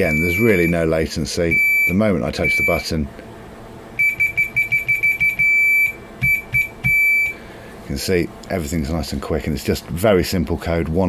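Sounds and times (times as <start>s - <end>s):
electronic buzzer beeping: 0.0s - 0.8s, 1.5s - 2.8s, 4.0s - 7.4s.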